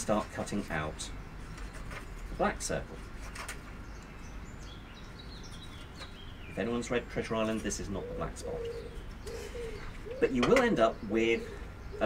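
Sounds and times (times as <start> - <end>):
small birds chirping: 0.0 - 12.0
steady outdoor noise: 0.0 - 12.0.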